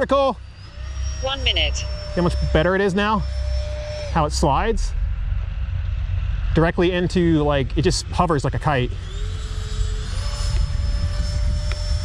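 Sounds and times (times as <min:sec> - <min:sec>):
electric ducted fan whine: 0:00.0 - 0:12.0
wind rumble on microphone: 0:04.4 - 0:12.0.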